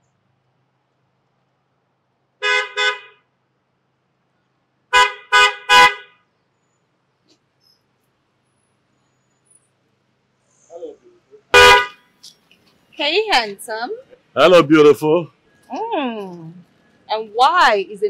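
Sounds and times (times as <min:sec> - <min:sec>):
car horn toots: 0:02.4 - 0:03.2, 0:04.9 - 0:06.2, 0:11.5 - 0:12.0.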